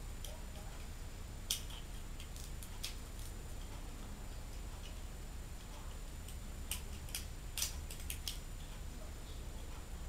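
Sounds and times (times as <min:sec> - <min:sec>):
low steady hum: 0:00.0 - 0:10.0
plastic toy parts clicking: 0:01.5 - 0:03.3, 0:06.3 - 0:08.4.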